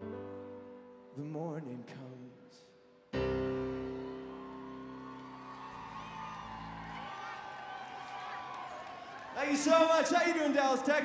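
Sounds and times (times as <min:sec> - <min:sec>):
piano chord ringing: 0:03.1 - 0:05.5
crowd cheering and whistling: 0:03.2 - 0:11.0.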